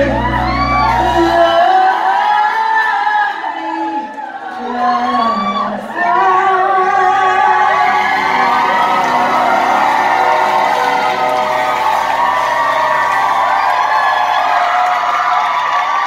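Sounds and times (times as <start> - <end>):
audience cheering and whooping: 0.0 - 3.3, 4.2 - 16.0
band playing: 7.4 - 15.9.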